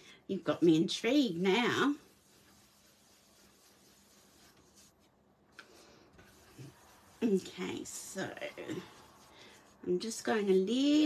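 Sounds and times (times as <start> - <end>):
brush scrubbing on paper: 1.0 - 11.0.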